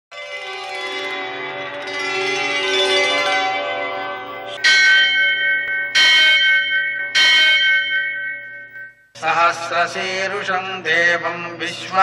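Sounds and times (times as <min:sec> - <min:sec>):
large bell ringing: 0:00.3 - 0:10.5.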